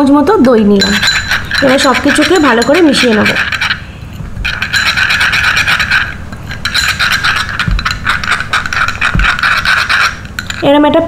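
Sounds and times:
teaspoon stirring in glass bowl: 0.5 - 11.0.

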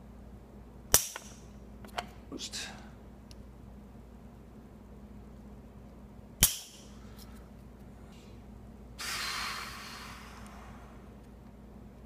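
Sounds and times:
desoldering pump snap: 6.4 - 6.8.

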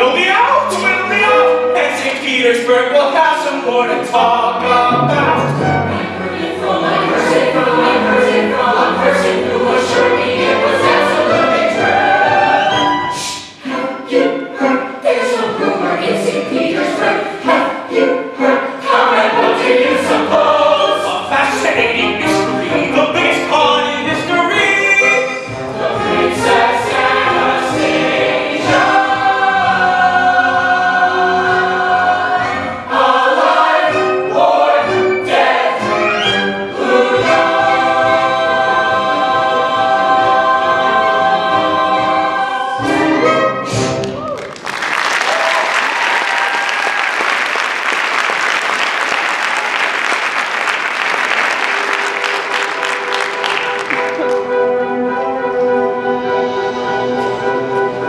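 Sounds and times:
ensemble singing with orchestra: 0.0 - 44.2, 51.2 - 58.0
soft orchestral music: 0.0 - 44.4, 51.3 - 58.0
audience applause: 44.0 - 54.4.

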